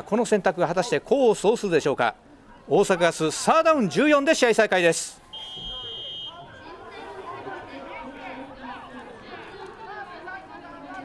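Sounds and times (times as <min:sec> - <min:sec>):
players calling out and shouting: 0:00.0 - 0:06.9.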